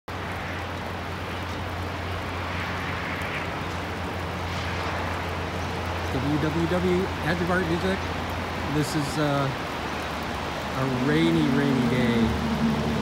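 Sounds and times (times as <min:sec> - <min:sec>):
distant waterfall: 0:00.1 - 0:13.0
heavy rain: 0:00.1 - 0:13.0
low even rumble: 0:11.7 - 0:13.0.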